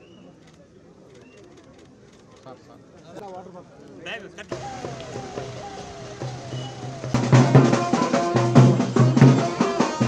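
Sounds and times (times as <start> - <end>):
distant crowd voices: 0.0 - 10.0.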